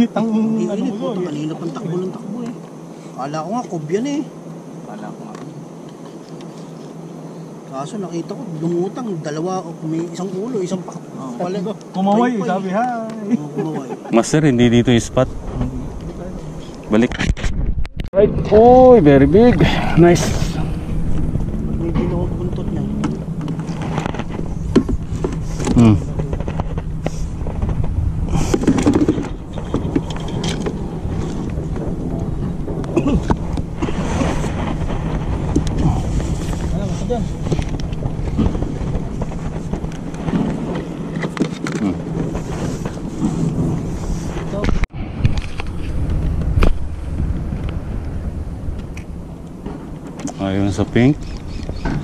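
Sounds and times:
boat motor humming: 18.2 - 52.0
indistinct voices: 25.4 - 27.2.

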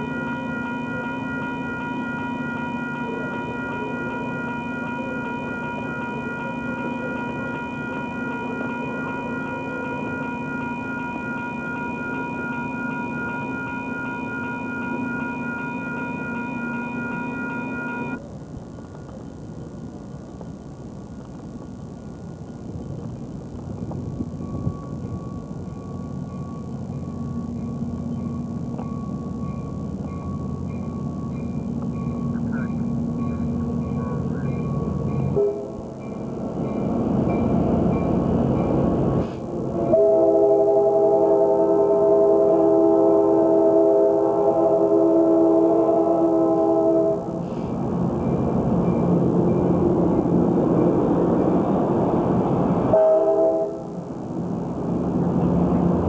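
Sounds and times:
passenger train rumbling past: 0.0 - 56.0
train horn blasts: 35.3 - 35.9, 39.7 - 47.6, 52.9 - 54.0.

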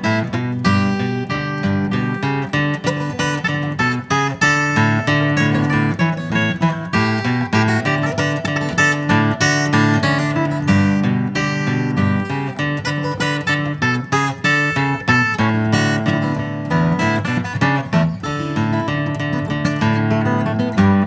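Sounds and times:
strummed acoustic guitar music: 0.0 - 21.0.

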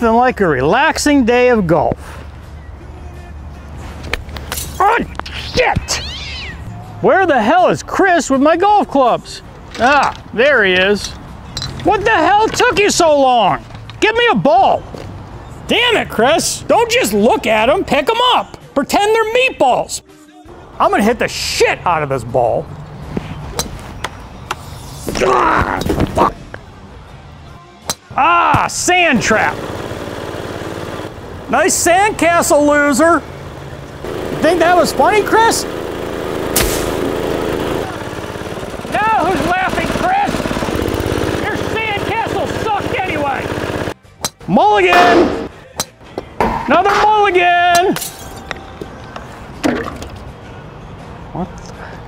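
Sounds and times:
golf club striking turf: 36.6 - 36.9.

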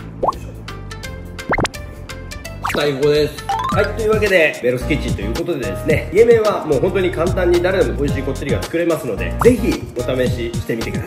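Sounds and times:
background music: 0.0 - 11.0
rising pop sound effect: 1.4 - 1.8, 2.6 - 2.8, 3.4 - 4.2.

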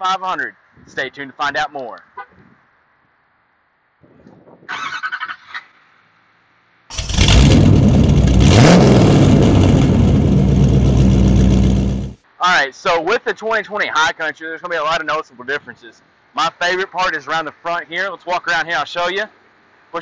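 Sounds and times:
loud vehicle engine revving: 6.9 - 12.2.

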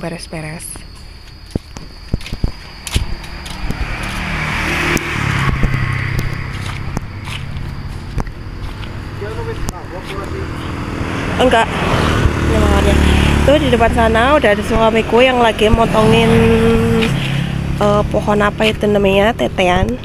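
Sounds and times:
sharp ticks: 0.7 - 10.8
vehicle passing on road: 2.2 - 20.0.

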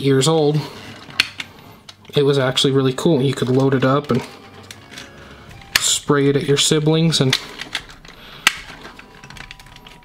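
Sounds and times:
action figure handling clicks: 1.1 - 2.1, 7.2 - 10.0
sharp plastic click: 7.2 - 10.0.

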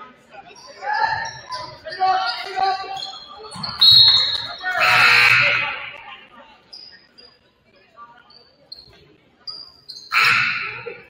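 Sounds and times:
referee's whistle: 2.4 - 5.8.

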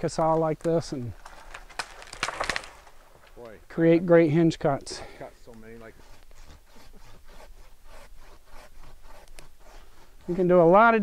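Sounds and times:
rustling and crackling: 0.0 - 11.0
sharp clicks: 0.6 - 3.6.

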